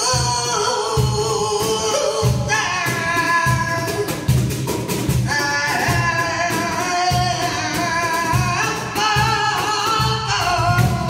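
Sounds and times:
man singing: 0.0 - 4.5, 5.2 - 11.0
cajon strokes: 0.0 - 11.0
flamenco guitar: 0.0 - 11.0.

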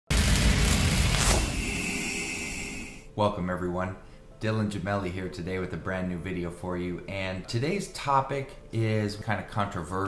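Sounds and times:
deep booming hit: 0.1 - 2.2
brief whoosh: 0.4 - 3.1.

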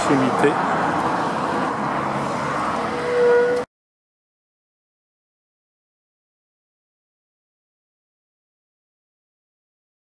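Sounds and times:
car passing by: 0.0 - 3.7.

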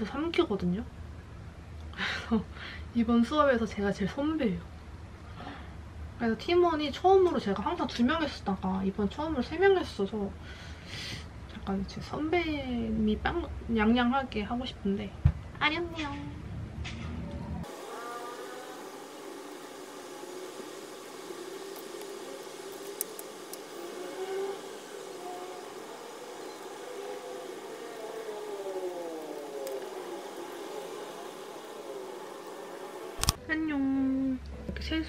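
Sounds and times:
whirring gliding tones effect: 17.6 - 33.4.

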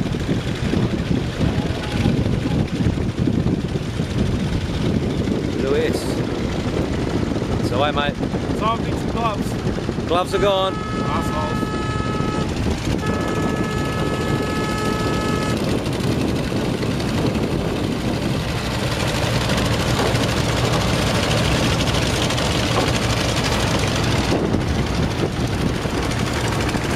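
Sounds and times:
ferry engine rumble: 0.0 - 26.9
water noise: 0.0 - 26.9
wind: 0.0 - 26.9
horn-like tone: 10.3 - 15.8.

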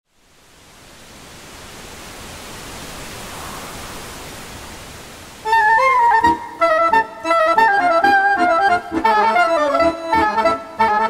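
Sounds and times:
waterfall rushing: 0.1 - 11.0.

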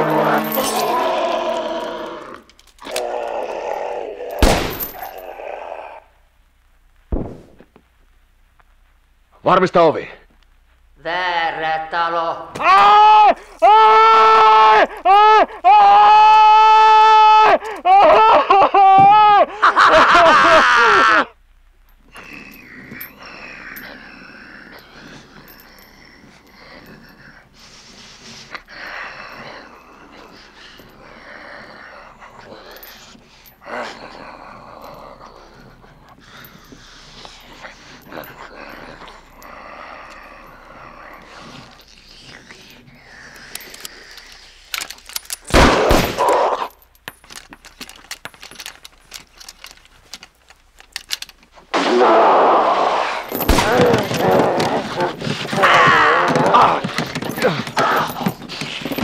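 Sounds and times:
voices groaning and shouting: 0.0 - 6.2, 11.0 - 21.4, 22.0 - 50.3, 50.9 - 59.0
loud rifle shots: 4.4 - 5.0, 45.5 - 46.3, 53.4 - 54.1
rapid sharp cracks: 53.3 - 55.7.

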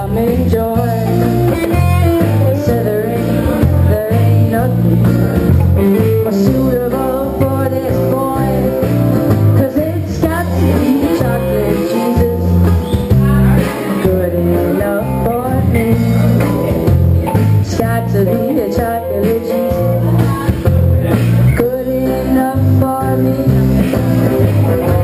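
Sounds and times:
acoustic guitar: 0.0 - 25.0
electric bass line: 0.0 - 25.0
woman singing: 0.0 - 25.0.

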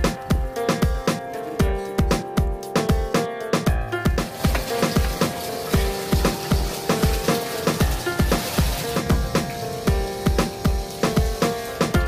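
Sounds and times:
kick drum beat: 0.0 - 3.1.

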